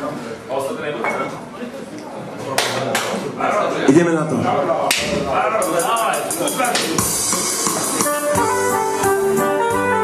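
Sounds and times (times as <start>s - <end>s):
men talking: 0.3s - 9.3s
sharp slaps: 4.9s - 5.2s.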